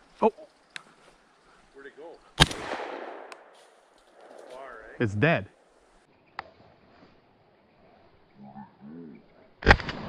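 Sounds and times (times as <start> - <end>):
shotgun report echo: 2.4 - 3.5
man speaking: 4.5 - 5.5.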